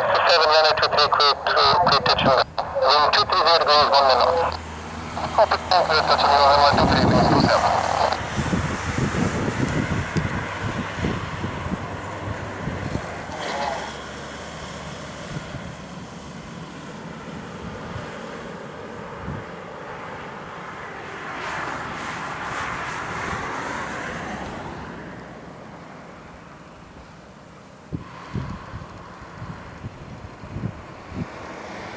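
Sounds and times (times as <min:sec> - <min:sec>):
distant jet engine: 0:00.0 - 0:31.9
wind rumbling on microphone: 0:04.4 - 0:13.5, 0:15.2 - 0:16.6, 0:19.0 - 0:19.7, 0:27.9 - 0:31.9.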